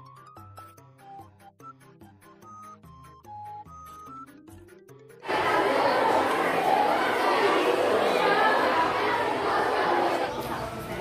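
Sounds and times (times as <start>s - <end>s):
babble of overlapping voices: 5.2s - 11.0s.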